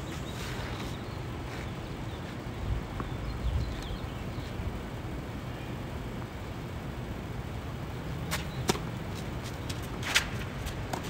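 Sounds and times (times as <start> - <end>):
outdoor background noise: 0.0 - 11.0
tennis racket hitting ball: 8.3 - 8.9.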